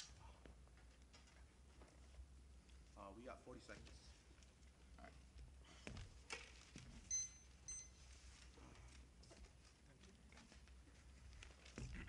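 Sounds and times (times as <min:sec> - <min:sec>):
electronic timer beeps: 0:07.1 - 0:08.0.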